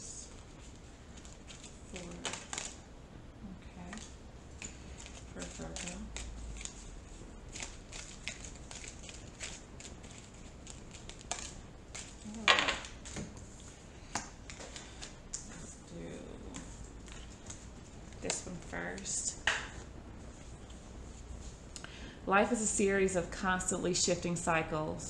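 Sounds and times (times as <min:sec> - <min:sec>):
cards being shuffled: 0:00.2 - 0:02.8, 0:03.9 - 0:06.9, 0:07.5 - 0:15.5, 0:16.5 - 0:19.2.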